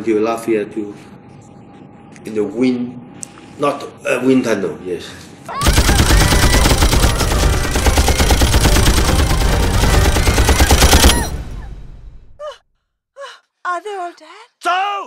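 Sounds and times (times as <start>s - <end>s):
machine gun firing: 5.6s - 12.4s.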